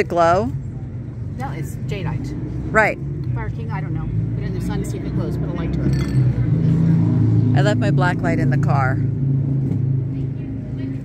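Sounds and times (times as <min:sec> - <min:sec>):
low motor hum: 0:00.0 - 0:11.0.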